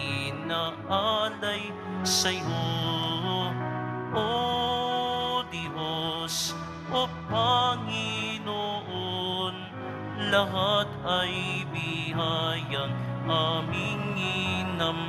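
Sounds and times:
person singing a hymn with vibrato: 0:00.0 - 0:15.0.

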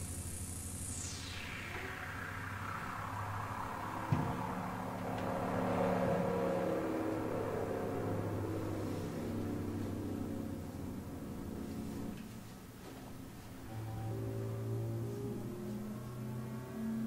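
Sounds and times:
electronic drone of low tones: 0:00.0 - 0:17.0
sharp thump: 0:03.9 - 0:05.0.

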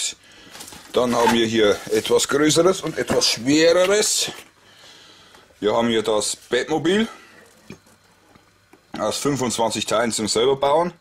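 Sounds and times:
man speaking: 0:00.9 - 0:04.4, 0:05.6 - 0:07.3, 0:08.9 - 0:11.0.

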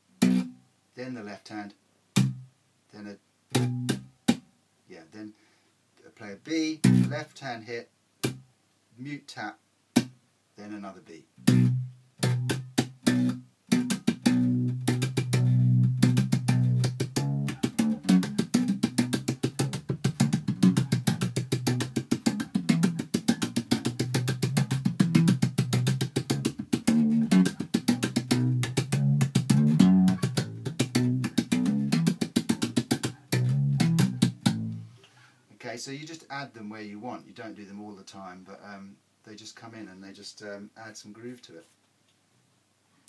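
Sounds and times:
slap bass funk groove: 0:11.4 - 0:34.8.

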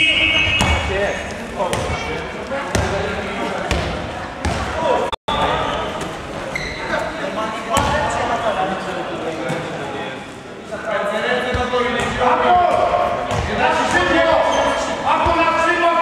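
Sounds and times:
whistle blast: 0:00.0 - 0:00.9
ball bouncing on hall floor: 0:00.4 - 0:04.9, 0:11.5 - 0:14.2.

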